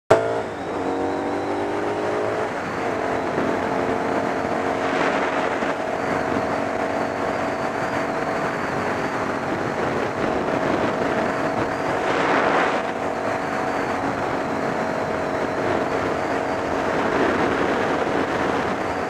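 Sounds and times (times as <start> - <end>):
motorcycle engine running: 0.1 - 19.0
wind noise on microphone: 0.2 - 19.0.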